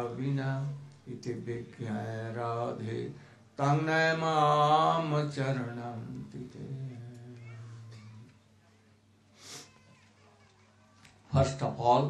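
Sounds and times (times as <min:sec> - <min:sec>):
man chanting a prayer: 0:00.0 - 0:08.2, 0:11.3 - 0:12.0
short breathy hiss: 0:09.3 - 0:09.8.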